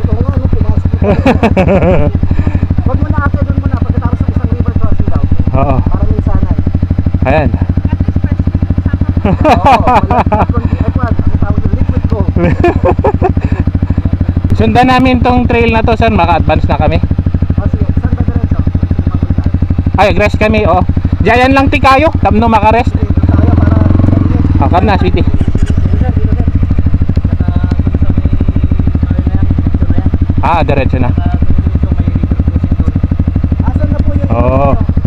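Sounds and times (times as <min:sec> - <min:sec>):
people talking and laughing: 0:00.0 - 0:14.5, 0:23.0 - 0:30.4
dirt bike engine idling: 0:00.0 - 0:35.0.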